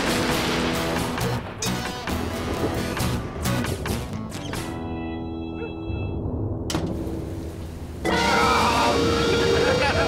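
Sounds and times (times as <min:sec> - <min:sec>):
music: 0:00.0 - 0:07.0, 0:08.0 - 0:10.0
heavy rain hiss: 0:06.9 - 0:10.0.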